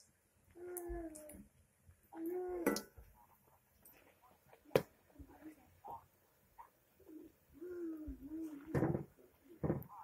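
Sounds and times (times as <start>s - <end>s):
pigeon cooing: 7.0s - 9.7s.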